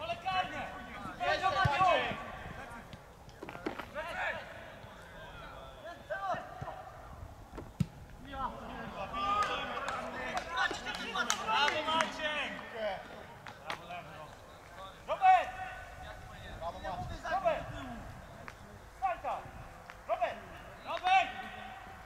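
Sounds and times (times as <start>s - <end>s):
players shouting: 0.0s - 2.8s, 8.2s - 13.0s, 19.0s - 22.0s.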